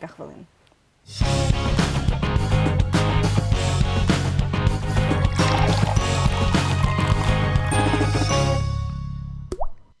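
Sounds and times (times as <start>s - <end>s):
jingle music: 4.6s - 9.5s
cartoon water-drop plop: 9.5s - 9.9s.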